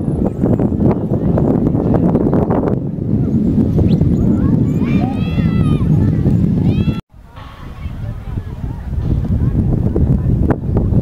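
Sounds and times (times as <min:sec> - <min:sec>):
crowd voices: 0:00.0 - 0:11.0
wind rumble on microphone: 0:00.0 - 0:11.0.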